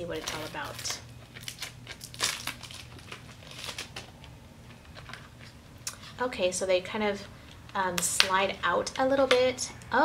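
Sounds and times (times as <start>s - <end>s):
cardboard box crinkling open: 0.2s - 4.1s.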